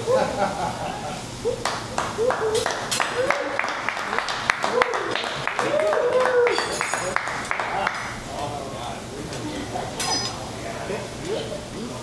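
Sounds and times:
people clapping in rhythm: 0:01.6 - 0:08.2.

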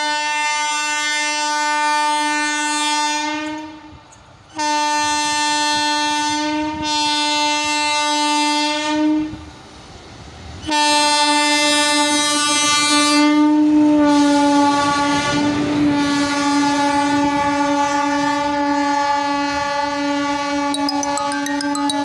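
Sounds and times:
passing train running noise: 0:00.0 - 0:20.9.

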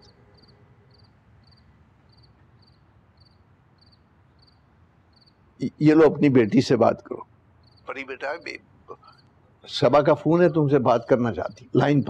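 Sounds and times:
crickets chirping: 0:00.0 - 0:12.0
low steady background hush: 0:00.0 - 0:12.0
man's voice: 0:07.9 - 0:09.0, 0:09.7 - 0:12.0.

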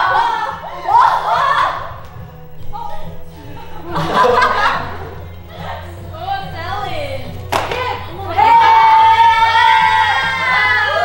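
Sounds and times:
voices talking and laughing: 0:00.0 - 0:11.0
hand clap: 0:07.4 - 0:08.0.

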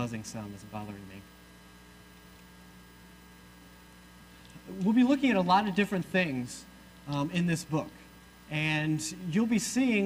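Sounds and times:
mains hum: 0:00.0 - 0:10.0.

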